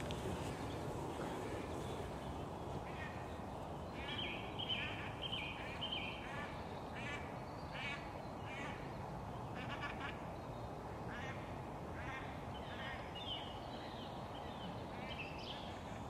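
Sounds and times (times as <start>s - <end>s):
bird calling: 0.0s - 8.9s.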